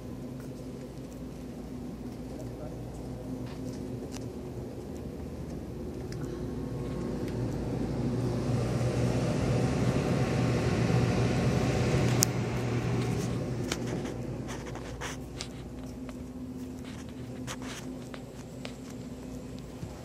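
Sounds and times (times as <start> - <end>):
footsteps on tiled floor: 0.0 - 7.7, 13.0 - 20.0.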